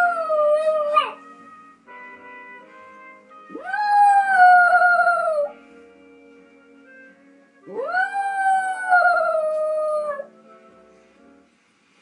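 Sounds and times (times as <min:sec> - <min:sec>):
faint tv theme tune: 0:00.0 - 0:12.0
dog howling: 0:03.5 - 0:05.5, 0:07.7 - 0:10.3.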